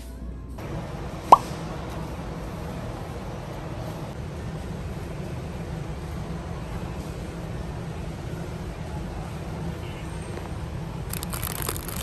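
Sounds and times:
store ambience hiss: 0.0s - 12.0s.

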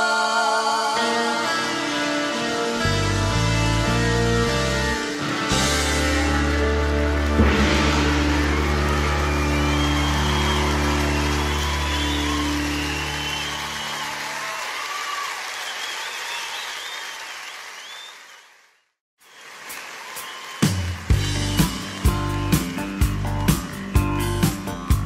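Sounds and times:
live band chord ringing: 1.0s - 11.8s
audience applause and cheering: 2.2s - 25.0s.

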